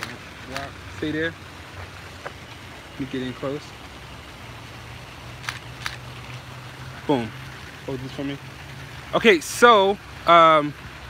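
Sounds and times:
camera shutter clicks: 5.4 - 6.1.

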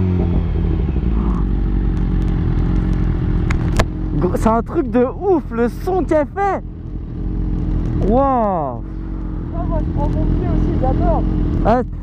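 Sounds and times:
motorcycle engine idling: 0.0 - 12.0.

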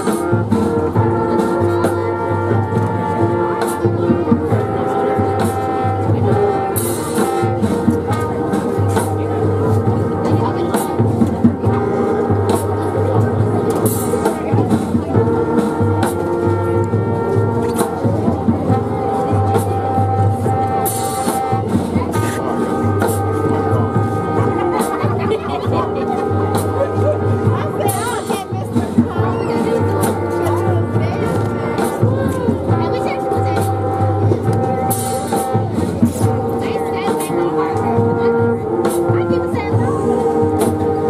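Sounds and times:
marching band playing: 0.0 - 41.0.

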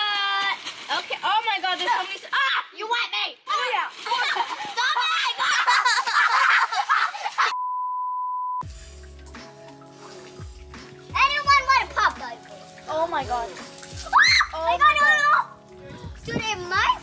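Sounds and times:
girl's excited voice: 0.0 - 6.0, 14.1 - 15.5
steady single-pitch beep: 7.6 - 8.6
background music: 8.6 - 17.0.

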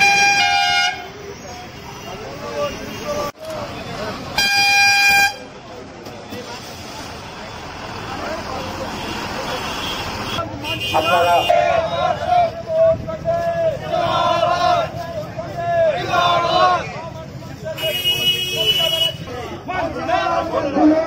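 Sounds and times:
bus horn blasts: 0.0 - 1.1, 4.4 - 5.5, 9.0 - 11.5, 17.8 - 19.3
street traffic noise: 0.0 - 21.0
voices: 0.0 - 21.0.

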